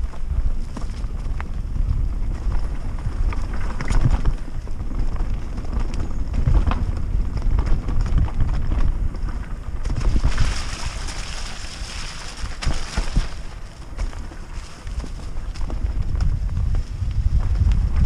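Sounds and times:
bike knocks and rattles: 0.0 - 18.0
mountain bike rumble: 0.0 - 18.0
wind on microphone: 0.0 - 18.0.

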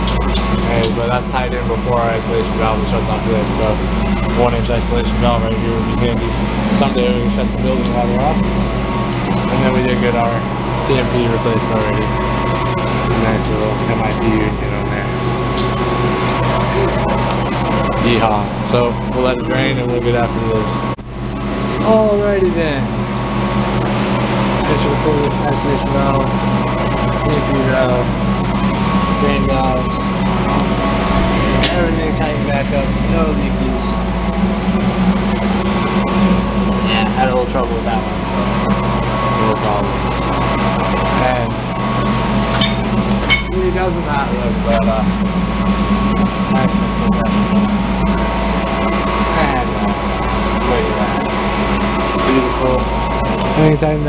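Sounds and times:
faint steady whine: 0.0 - 54.0
low machinery hum: 0.0 - 54.0.

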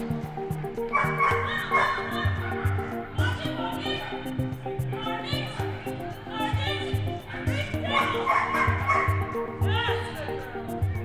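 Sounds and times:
background music with steady beat: 0.0 - 11.0
dog barking: 0.9 - 2.8, 7.3 - 9.4.

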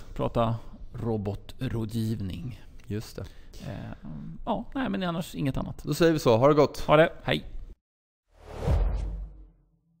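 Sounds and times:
swelling whoosh: 8.4 - 9.6.

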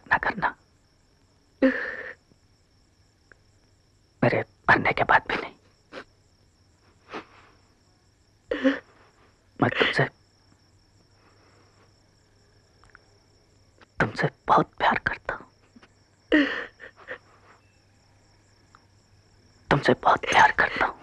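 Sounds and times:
crickets chirring: 0.0 - 21.0.

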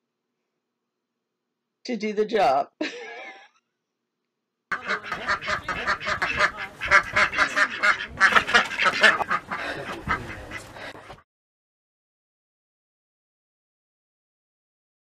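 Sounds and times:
ducks quacking: 4.7 - 11.2.

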